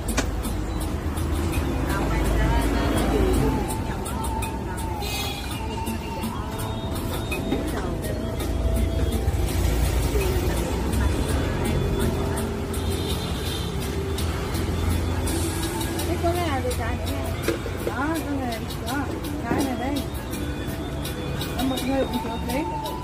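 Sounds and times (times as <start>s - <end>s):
background music: 0.0s - 23.0s
road traffic rumble: 0.0s - 23.0s
people talking: 1.5s - 20.4s, 21.5s - 23.0s.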